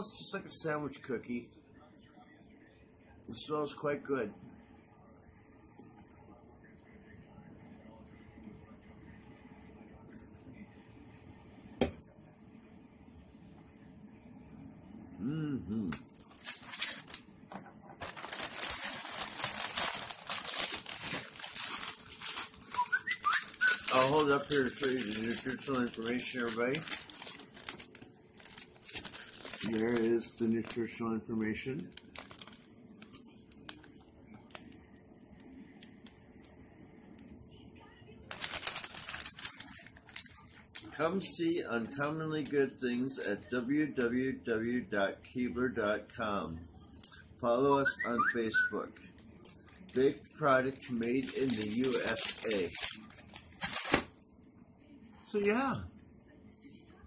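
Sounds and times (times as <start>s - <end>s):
plastic package crinkling: 15.9s - 34.8s, 38.3s - 41.0s, 49.2s - 54.2s.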